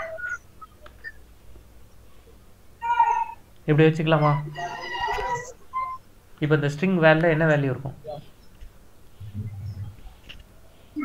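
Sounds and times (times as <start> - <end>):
high-pitched animal call: 2.8 - 3.4, 4.2 - 6.0
person's voice: 3.7 - 5.5.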